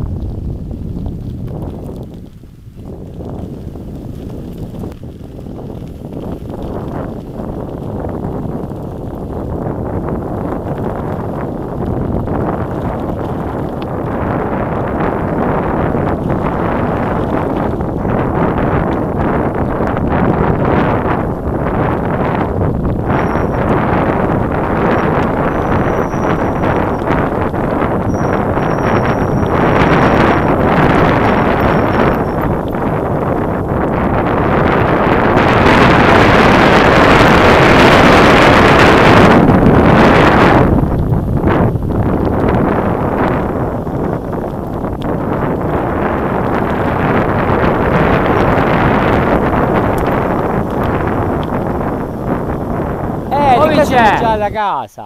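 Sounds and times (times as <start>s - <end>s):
wind buffeting microphone: 0.0s - 55.0s
bike rattling and knocking: 1.0s - 53.4s.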